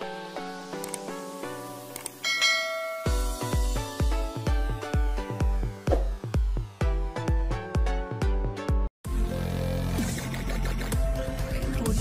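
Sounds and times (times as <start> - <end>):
notification bell ding: 2.2 - 3.6
electronic music with heavy bass: 3.1 - 12.0.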